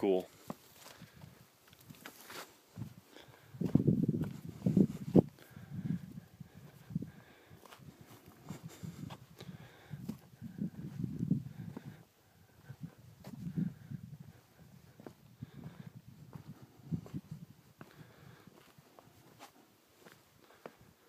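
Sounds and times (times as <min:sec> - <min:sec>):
footsteps on rock and grit: 0:00.3 - 0:05.3.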